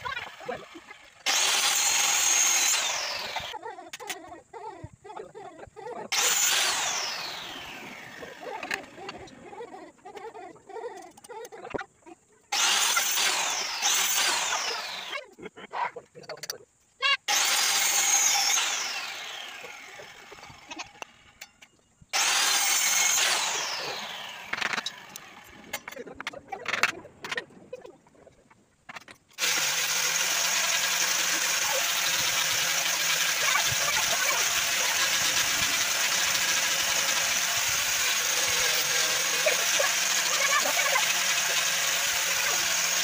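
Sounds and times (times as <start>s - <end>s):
circular saw whining: 0.0s - 4.2s, 6.0s - 10.5s, 12.5s - 15.2s, 17.2s - 26.2s, 29.4s - 43.0s.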